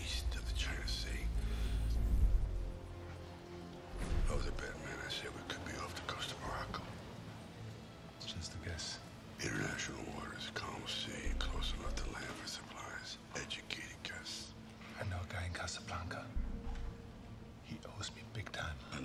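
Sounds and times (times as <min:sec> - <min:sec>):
men whispering: 0:00.0 - 0:02.0, 0:04.3 - 0:07.0, 0:08.2 - 0:16.4, 0:17.6 - 0:19.0
faint steady hum: 0:00.0 - 0:19.0.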